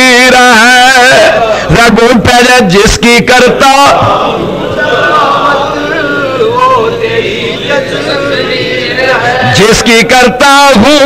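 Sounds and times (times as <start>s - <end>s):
man chanting verse: 5.3s - 11.0s.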